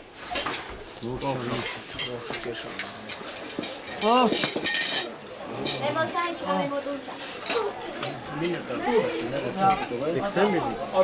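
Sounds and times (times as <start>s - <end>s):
talk around a meal table: 0.0s - 11.0s
clinks of glasses and cutlery: 0.3s - 6.8s, 7.4s - 8.6s, 9.6s - 10.0s.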